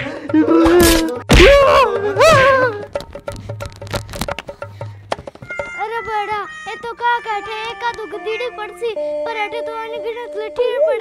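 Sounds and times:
background music: 0:00.0 - 0:11.0
girl calling out in wavering tones: 0:05.6 - 0:11.0.

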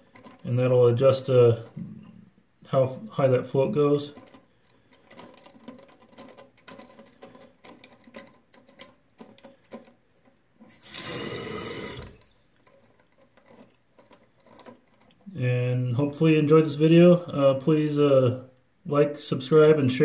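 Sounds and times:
water rushing into tank: 0:10.7 - 0:12.5.

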